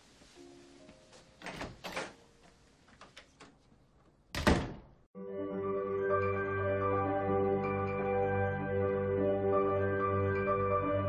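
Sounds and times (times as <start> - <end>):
door slamming shut: 4.3 - 5.0.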